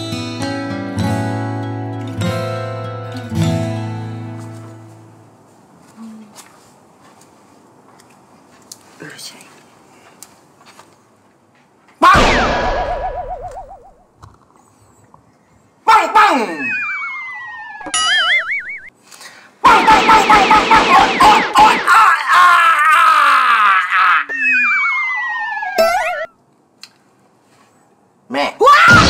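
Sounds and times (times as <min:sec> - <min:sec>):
falling wobbling whistle tones: 0:12.1 - 0:14.0, 0:16.5 - 0:18.9, 0:24.3 - 0:26.3
rapid springy boings and sweeps: 0:12.1 - 0:14.1, 0:16.6 - 0:18.9
cartoon boing: 0:16.6 - 0:18.9, 0:24.3 - 0:26.3.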